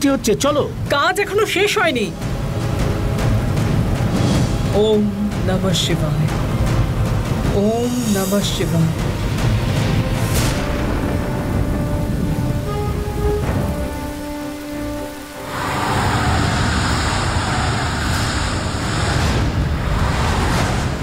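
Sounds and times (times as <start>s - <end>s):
background music long notes: 0.0s - 21.0s
heavy rain falling: 0.0s - 21.0s.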